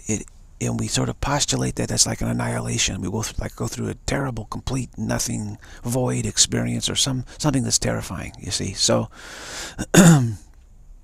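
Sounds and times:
man breathing out: 9.1 - 9.9
man clearing throat: 9.8 - 10.5.

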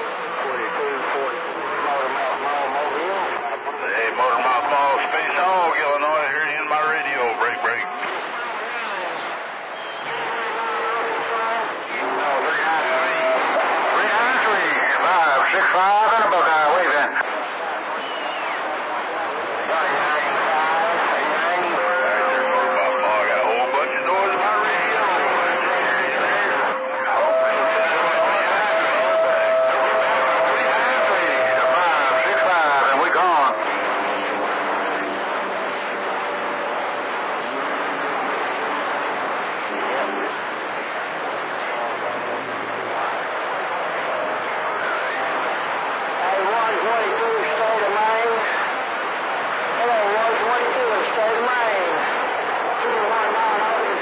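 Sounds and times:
garbled voices over radio speaker: 0.0 - 9.4, 10.0 - 17.4, 19.1 - 35.0, 46.2 - 48.8
steady whistle tones: 9.6 - 11.1, 17.9 - 18.8.

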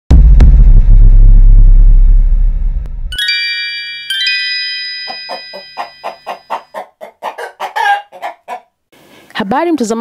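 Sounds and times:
deep sustained rumble: 0.1 - 3.1.

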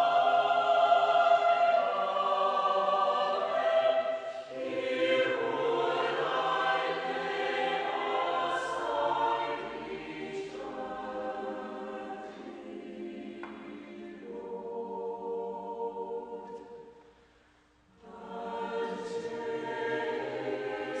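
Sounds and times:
congregation singing a hymn: 0.0 - 17.0, 18.0 - 21.0.

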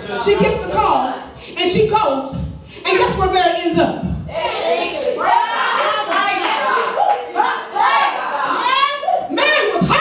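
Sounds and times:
woman's voice: 0.1 - 4.1
hands clapping: 5.8 - 7.4.

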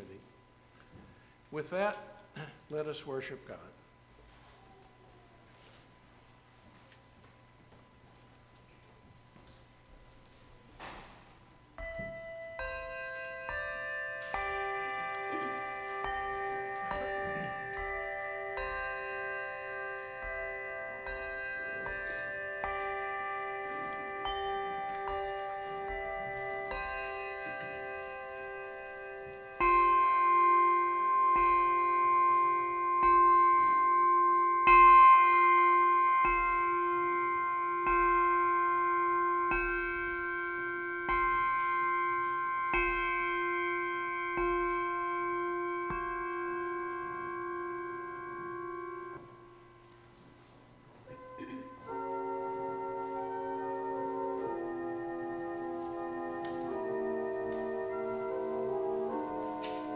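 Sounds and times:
handbells playing slow tune: 11.7 - 59.9.

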